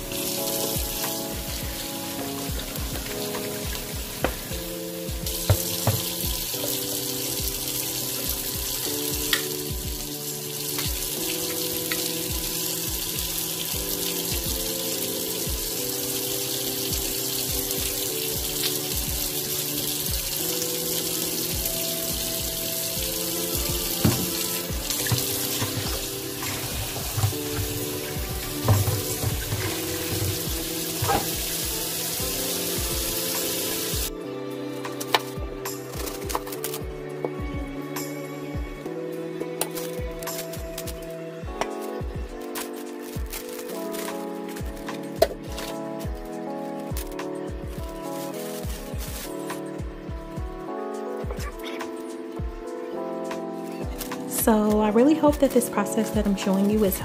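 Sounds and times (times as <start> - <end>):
background music with steady beat: 0.0 - 57.0
tap running into a bowl: 5.3 - 6.2, 23.7 - 31.3
sharp knocks at sink: 5.4 - 6.2, 24.0 - 24.4.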